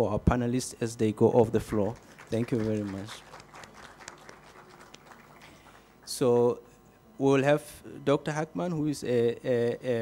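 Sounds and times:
faint audience applause: 0:01.7 - 0:06.1.

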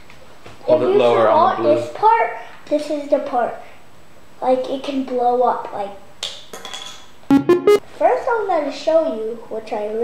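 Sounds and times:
buzzy synthesizer notes: 0:07.3 - 0:07.8.

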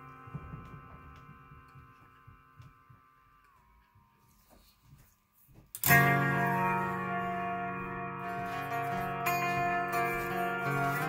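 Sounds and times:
guitar chord through effects pedal: 0:00.0 - 0:05.0, 0:05.8 - 0:11.0.

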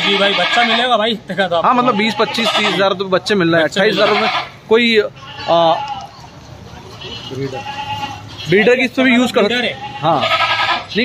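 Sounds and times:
goat bleating: 0:00.0 - 0:03.0, 0:03.8 - 0:06.3, 0:06.9 - 0:11.0
faint voices: 0:03.8 - 0:11.0.

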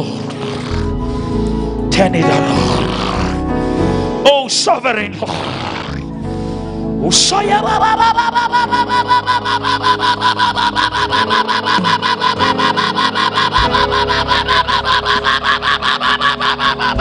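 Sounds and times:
soft keyboard chords: 0:00.0 - 0:09.3.

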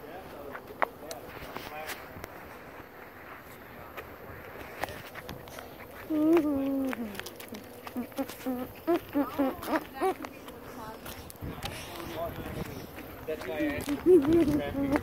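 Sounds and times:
footsteps on mulch and gravel: 0:00.3 - 0:15.0
child vocal sounds: 0:06.0 - 0:11.0.

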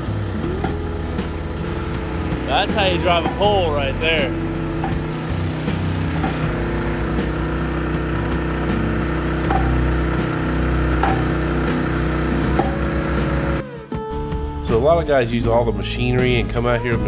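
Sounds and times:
post driver hammering metal beam: 0:00.0 - 0:13.6
small engine running: 0:00.0 - 0:13.8.

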